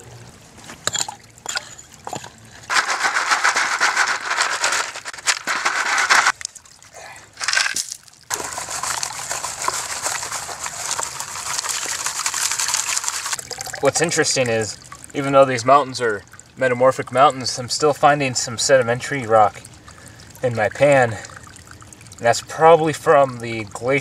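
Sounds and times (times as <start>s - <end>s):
stream water splashing and sloshing: 0.0s - 24.0s.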